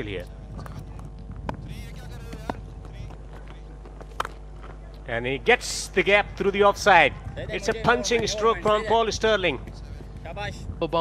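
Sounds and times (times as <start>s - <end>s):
bat striking ball: 4.1s - 4.4s.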